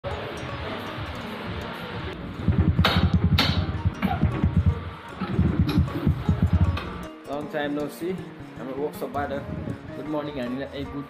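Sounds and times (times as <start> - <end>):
music with pulsing bass line: 1.0 - 7.2, 9.3 - 10.0
sharp hits: 2.4 - 7.0.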